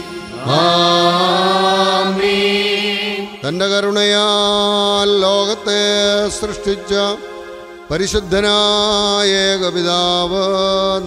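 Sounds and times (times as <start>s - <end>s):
person singing liturgical chant: 0.0s - 11.0s.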